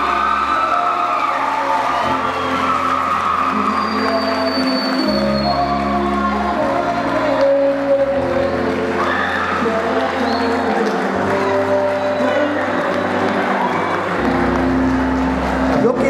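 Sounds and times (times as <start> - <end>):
keyboard playing low chords: 0.0 - 16.0.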